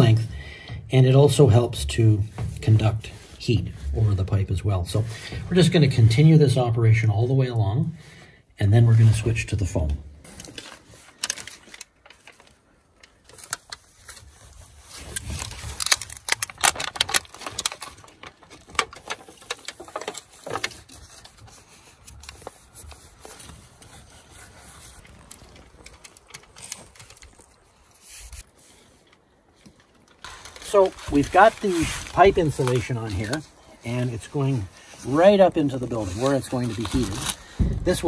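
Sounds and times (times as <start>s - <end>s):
foil tape crinkling and scraping: 10.2s - 38.0s.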